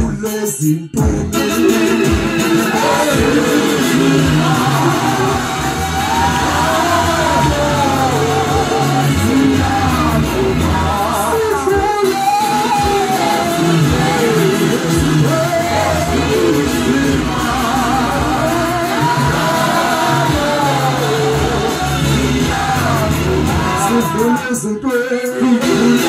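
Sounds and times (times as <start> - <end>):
backing vocalists singing: 0.0 - 26.0
instrumental backing with bass: 0.0 - 26.0
man singing gospel song: 0.0 - 26.0.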